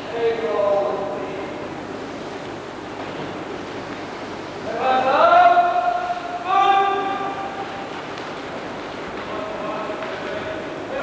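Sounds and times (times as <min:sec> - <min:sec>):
man shouting drawn-out commands: 0:04.8 - 0:07.5.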